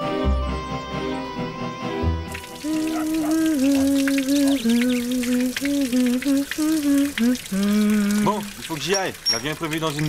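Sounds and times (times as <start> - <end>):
shower water splashing: 2.3 - 10.0
woman humming: 2.6 - 8.5.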